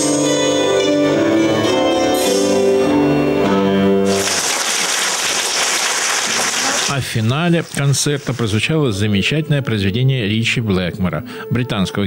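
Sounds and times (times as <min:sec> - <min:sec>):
audience applauding: 0:04.1 - 0:08.6.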